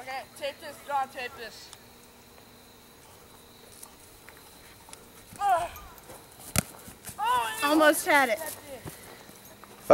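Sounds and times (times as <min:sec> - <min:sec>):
insect chorus trilling: 0:00.0 - 0:09.9.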